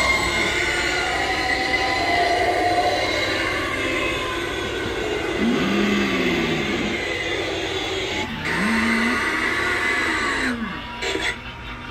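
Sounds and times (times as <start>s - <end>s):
recorded low moan: 0.0s - 11.0s.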